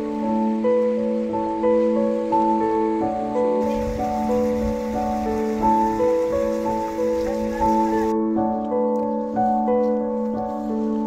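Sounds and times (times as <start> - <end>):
slow melody of held notes: 0.0 - 11.0
river water rushing over stones: 3.6 - 8.1.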